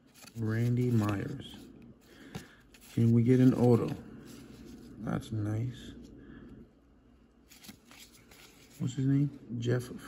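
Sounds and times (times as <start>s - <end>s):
cardboard card ticks and rustles: 0.0s - 1.5s
man speaking: 0.4s - 1.7s, 2.9s - 4.1s, 5.0s - 6.0s, 8.8s - 10.0s.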